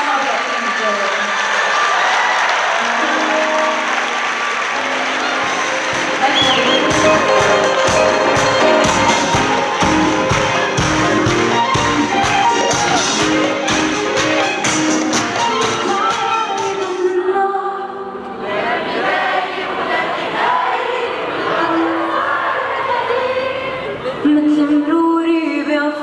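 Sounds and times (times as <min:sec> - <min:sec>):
crowd applauding and cheering: 0:00.0 - 0:17.1
held keyboard chords: 0:02.8 - 0:18.4
steady drum beat: 0:05.4 - 0:16.3.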